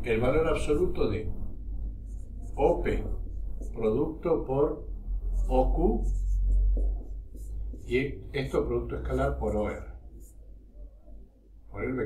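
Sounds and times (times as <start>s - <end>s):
low hum: 0.0s - 11.7s
marker writing on whiteboard: 0.2s - 11.6s.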